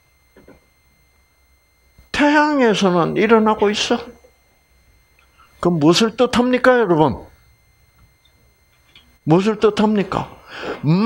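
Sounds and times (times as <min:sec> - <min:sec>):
faint high-pitched tone: 0:00.0 - 0:11.0.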